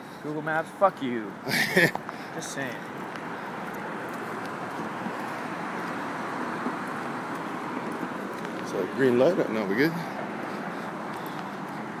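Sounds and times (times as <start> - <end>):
traffic road noise: 0.0 - 12.0.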